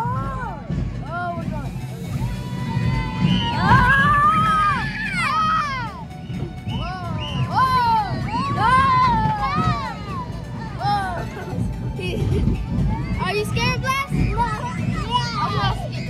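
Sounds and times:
steady low rumble: 0:00.0 - 0:16.0
children screaming on roller coaster: 0:02.2 - 0:06.0, 0:06.8 - 0:11.3.

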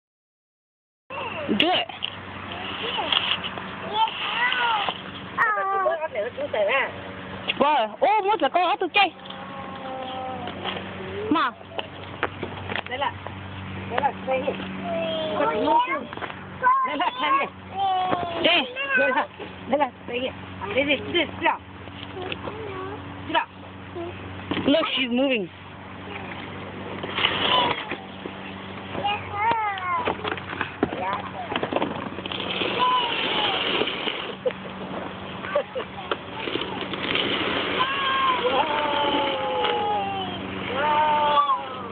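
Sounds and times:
cardboard scraping on concrete: 0:02.5 - 0:05.1, 0:26.9 - 0:28.1, 0:30.1 - 0:35.1, 0:36.2 - 0:38.5
young child crying and babbling: 0:03.9 - 0:06.0, 0:09.2 - 0:11.3, 0:14.8 - 0:16.9, 0:17.7 - 0:19.2, 0:23.9 - 0:24.2, 0:37.8 - 0:41.9
child's high-pitched wordless calls: 0:05.4 - 0:05.9, 0:14.8 - 0:19.1.

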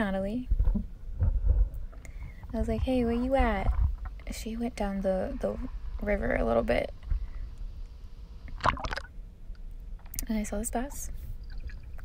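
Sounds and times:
low steady rumble: 0:00.0 - 0:12.0
water sloshing and splashing: 0:08.5 - 0:09.2.

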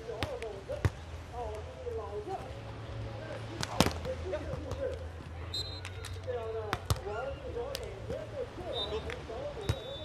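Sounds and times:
hands slapping volleyball: 0:05.8 - 0:07.1.

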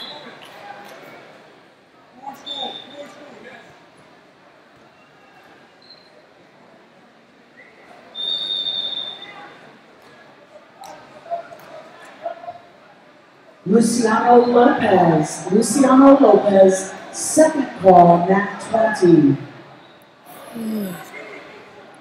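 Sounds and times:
referee's whistle: 0:00.0 - 0:00.4, 0:02.4 - 0:03.1, 0:07.7 - 0:09.6.

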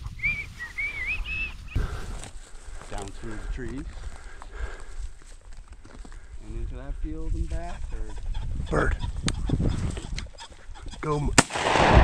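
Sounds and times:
pheasant cackling: 0:07.9 - 0:11.2.

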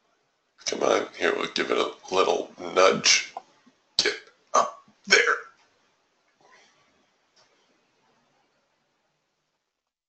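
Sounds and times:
man mumbling: 0:04.0 - 0:05.5.

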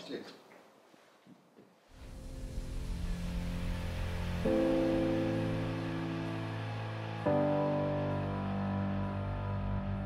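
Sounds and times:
sustained music chord: 0:02.0 - 0:10.0.

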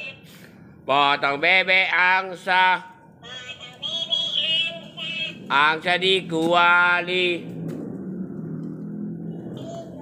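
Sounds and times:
toy speaker song backing: 0:00.0 - 0:00.2, 0:03.2 - 0:05.5.

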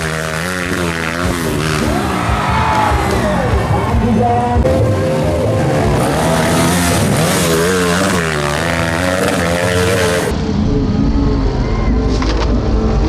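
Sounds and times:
dirt bike engine revving: 0:00.0 - 0:10.6.

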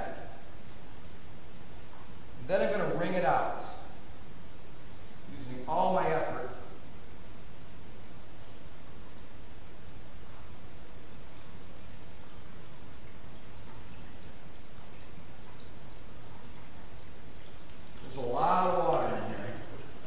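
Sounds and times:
water trickling from wrung towel: 0:00.0 - 0:20.0.

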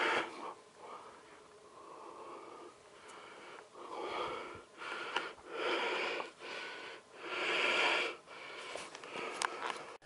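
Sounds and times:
fast heavy breathing: 0:00.0 - 0:10.0.

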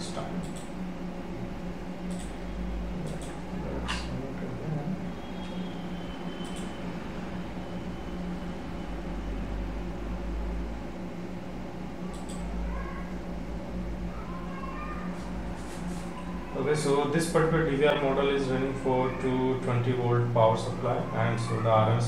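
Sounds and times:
computer hum: 0:00.0 - 0:22.0
mouse clicks: 0:12.1 - 0:12.4.

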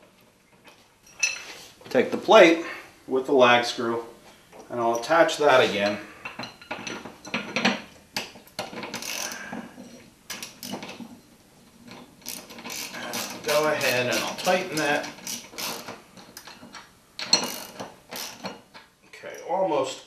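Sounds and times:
socket ratchet clicking: 0:12.2 - 0:16.5.

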